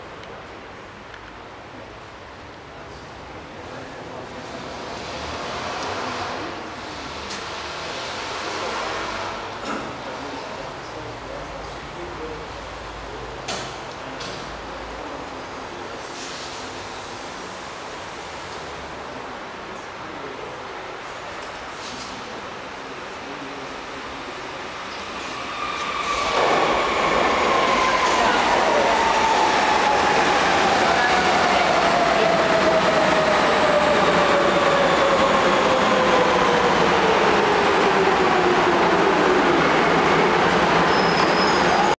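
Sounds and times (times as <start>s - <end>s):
train wheels on track: 3.6s - 11.6s, 23.1s - 42.0s.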